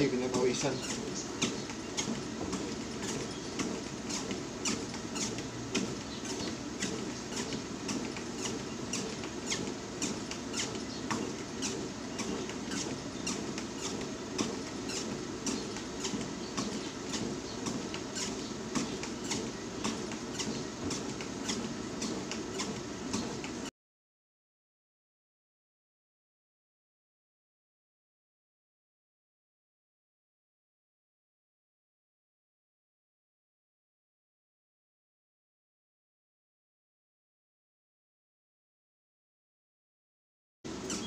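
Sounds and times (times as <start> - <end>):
footfalls on treadmill deck: 0.0 - 23.7
treadmill motor and belt hum: 0.0 - 23.7, 40.7 - 41.0.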